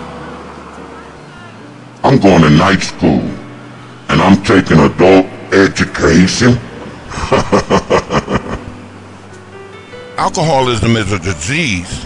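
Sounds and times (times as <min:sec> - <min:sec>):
person laughing: 0:07.1 - 0:08.8.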